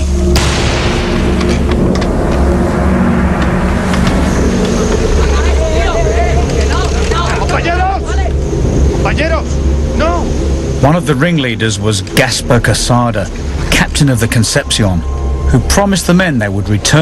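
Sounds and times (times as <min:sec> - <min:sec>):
held droning tones: 0:00.0 - 0:17.0
steady low rumble: 0:00.0 - 0:17.0.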